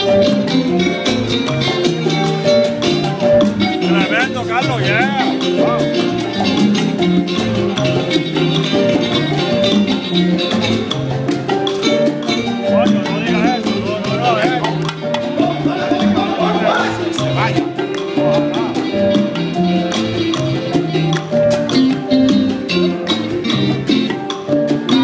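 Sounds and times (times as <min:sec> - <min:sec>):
bass line: 0:00.0 - 0:25.0
congas and hand percussion: 0:00.0 - 0:25.0
latin band playing: 0:00.0 - 0:25.0
lead voice singing: 0:15.3 - 0:17.3.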